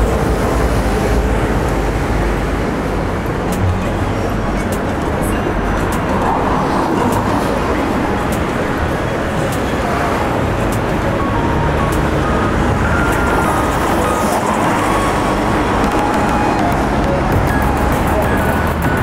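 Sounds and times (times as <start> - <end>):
music: 0.0 - 19.0
road traffic rumble: 0.0 - 19.0
voices of passers-by: 0.0 - 19.0.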